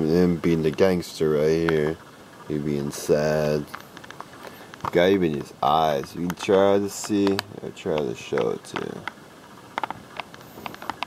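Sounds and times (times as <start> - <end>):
plastic box clicks and taps: 6.0 - 9.2, 9.8 - 11.0.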